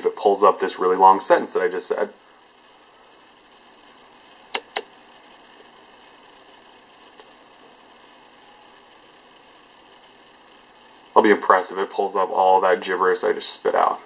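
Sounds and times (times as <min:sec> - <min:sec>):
faint steady hiss: 0:00.0 - 0:14.0
sharp clicks: 0:04.5 - 0:05.0.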